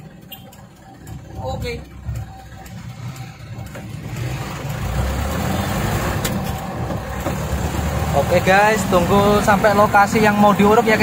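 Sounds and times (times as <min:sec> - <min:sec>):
truck engine from inside cab: 0:00.0 - 0:11.0.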